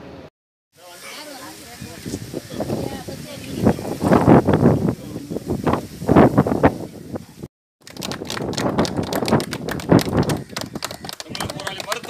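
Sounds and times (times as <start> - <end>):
group clapping hands: 7.8 - 12.0.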